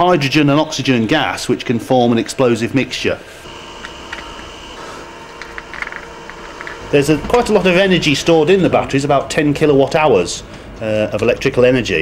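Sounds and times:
high whine: 2.8s - 12.0s.

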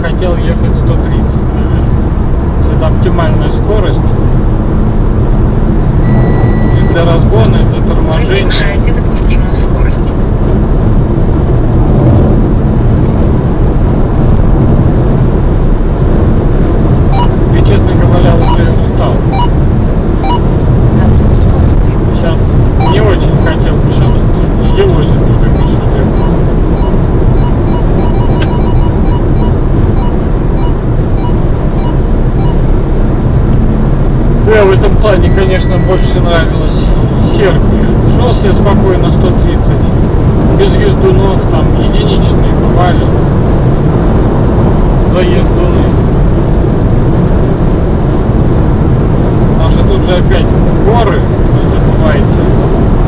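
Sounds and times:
car cruising low rumble: 0.0s - 53.0s.

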